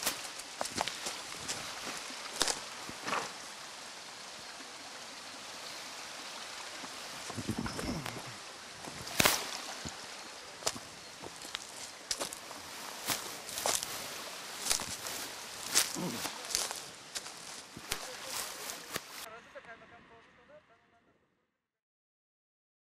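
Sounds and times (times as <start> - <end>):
footsteps on gravel: 0.0 - 3.4, 6.8 - 19.3.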